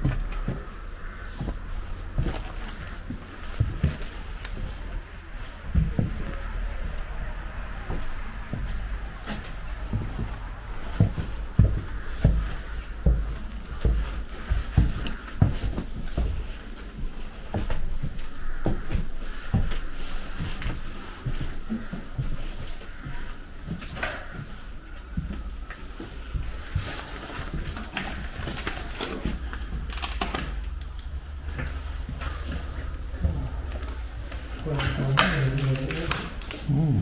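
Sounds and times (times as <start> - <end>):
low handling rumble: 0.0 - 14.4
footsteps on floorboards: 0.0 - 35.8
person's voice: 34.6 - 37.0.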